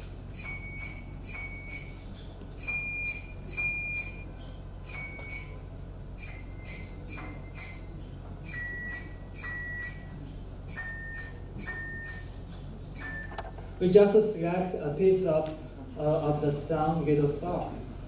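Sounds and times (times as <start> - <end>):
electronic organ beeping tune: 10.7 - 12.3, 13.0 - 13.4.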